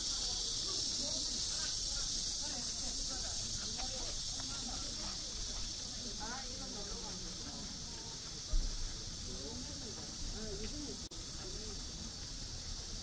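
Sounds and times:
high-pitched hiss: 0:00.0 - 0:13.0
people talking in the distance: 0:00.0 - 0:13.0.

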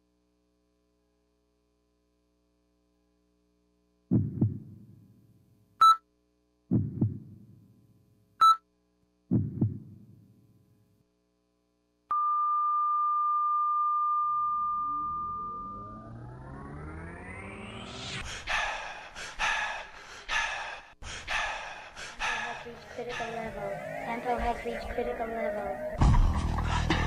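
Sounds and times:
deep double thumps: 0:04.1 - 0:05.1, 0:06.7 - 0:07.6, 0:09.3 - 0:10.3
short high beeps: 0:05.8 - 0:06.0, 0:08.4 - 0:08.6
long steady beep: 0:12.1 - 0:16.2
rising sweep of tones: 0:14.4 - 0:18.2, 0:23.0 - 0:26.0.

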